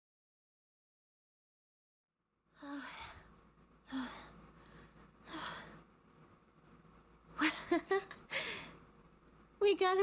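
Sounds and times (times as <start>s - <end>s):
woman breathing heavily: 2.5s - 6.0s, 8.2s - 8.9s
woman speaking: 9.6s - 10.0s.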